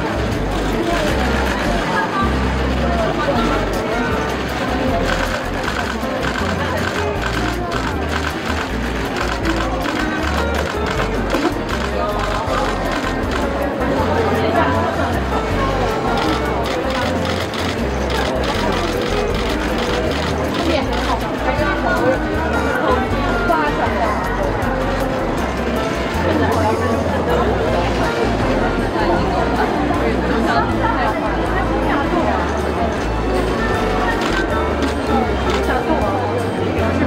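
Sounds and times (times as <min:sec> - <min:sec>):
background music: 0:00.0 - 0:37.0
crowd chatter: 0:00.0 - 0:37.0
camera shutters clicking: 0:05.0 - 0:13.5, 0:34.2 - 0:35.6.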